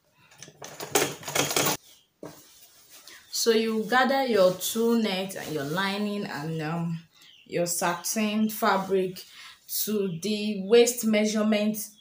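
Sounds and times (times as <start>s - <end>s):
sewing machine clatter: 0.4s - 1.8s.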